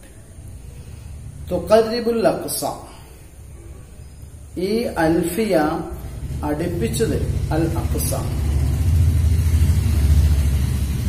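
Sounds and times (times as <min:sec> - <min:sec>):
loud low rumble: 0:05.9 - 0:11.0.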